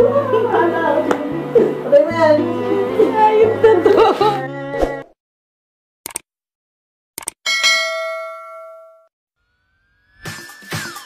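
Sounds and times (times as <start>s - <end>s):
notification bell ding: 7.5s - 9.1s.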